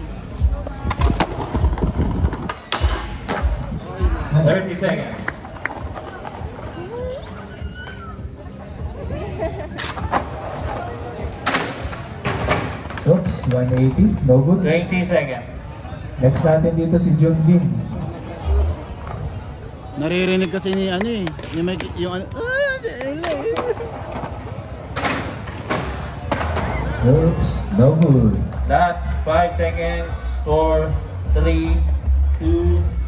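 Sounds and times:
crowd chatter: 0.0 - 33.0
skateboard wheels rolling on concrete: 0.0 - 33.0
skateboard clacking on concrete: 0.5 - 3.7, 4.8 - 8.0, 20.2 - 26.8
voices: 12.9 - 31.8.

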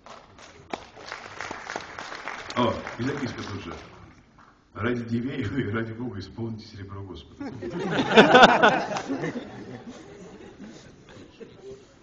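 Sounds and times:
audience applauding: 0.0 - 4.0, 8.3 - 9.4.

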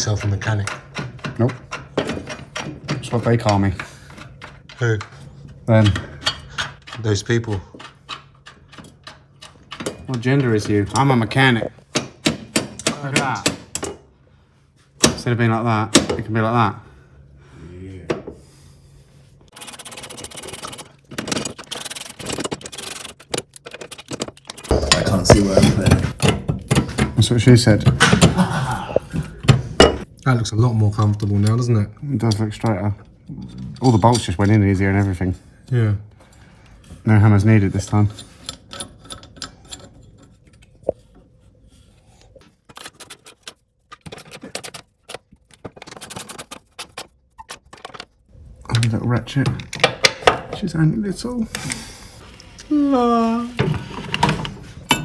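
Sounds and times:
knocks of bolts and tools: 0.0 - 5.2, 5.8 - 14.0.

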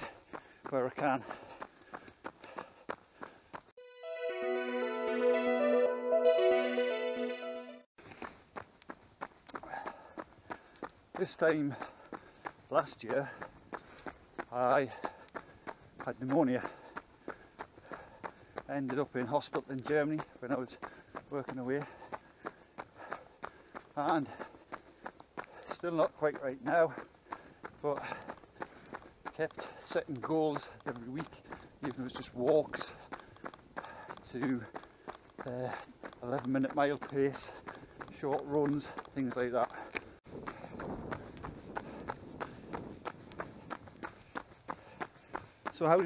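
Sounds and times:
man breathing: 0.0 - 3.7, 8.0 - 8.5, 9.5 - 10.9, 11.8 - 12.7, 13.3 - 16.0, 16.6 - 18.7, 20.8 - 21.2, 21.9 - 25.7, 27.0 - 29.9, 31.4 - 31.8, 33.0 - 35.9, 37.4 - 38.1, 39.7 - 45.7
running footsteps on tarmac: 0.0 - 3.8, 8.0 - 46.0.

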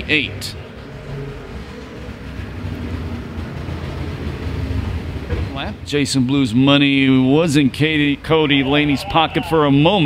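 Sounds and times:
race car engines rumbling: 0.0 - 10.0.

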